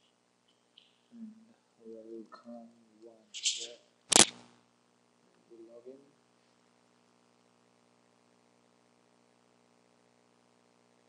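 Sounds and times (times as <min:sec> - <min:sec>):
loud sharp click: 0:04.1 - 0:04.5.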